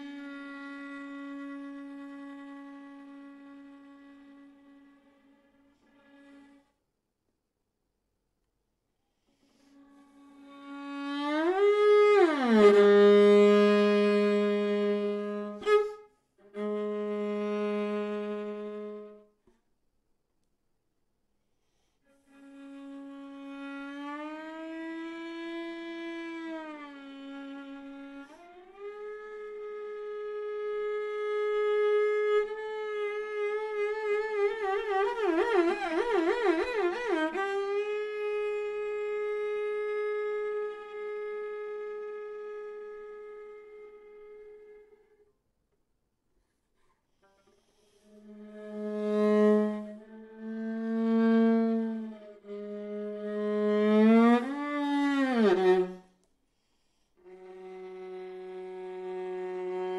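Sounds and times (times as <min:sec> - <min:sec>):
solo viola bowed notes: 0:00.0 - 0:06.9, 0:09.4 - 0:19.5, 0:22.1 - 0:45.3, 0:47.1 - 0:59.9.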